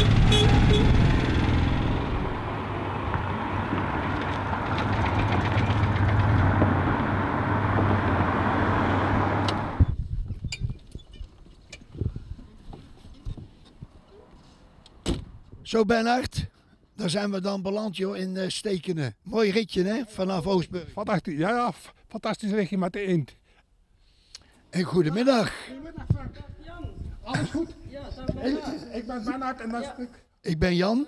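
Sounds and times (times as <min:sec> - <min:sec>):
car horn toots: 0:00.0 - 0:01.0
car engine driving past: 0:00.0 - 0:09.9.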